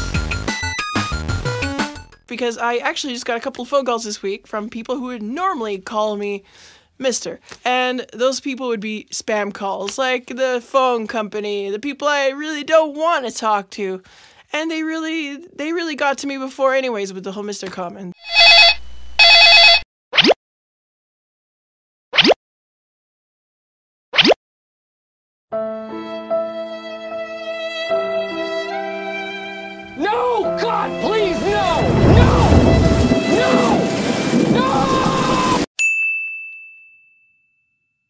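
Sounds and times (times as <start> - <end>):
telephone electronic trilling ring: 18.2 - 19.8
high clear ding: 35.8 - 37.9.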